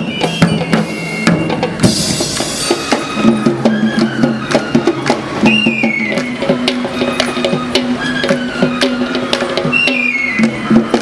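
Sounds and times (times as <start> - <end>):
drums in running rhythm: 0.0 - 11.0
wind instrument melody: 0.0 - 11.0.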